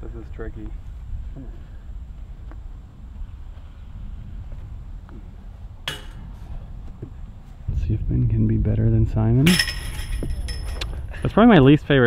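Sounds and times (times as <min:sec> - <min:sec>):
steady low rumble: 0:00.0 - 0:12.0
disc striking metal basket: 0:05.8 - 0:06.3, 0:09.4 - 0:11.0.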